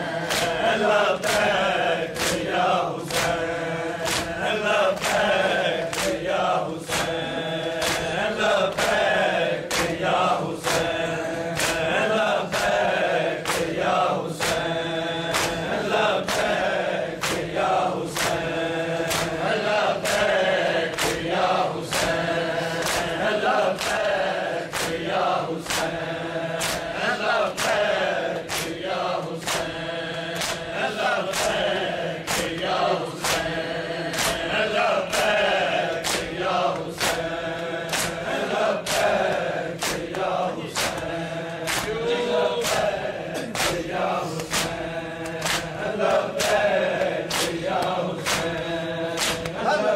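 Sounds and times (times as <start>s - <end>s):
group chanting: 0.0s - 49.9s
rhythmic chest-beating: 0.0s - 49.9s.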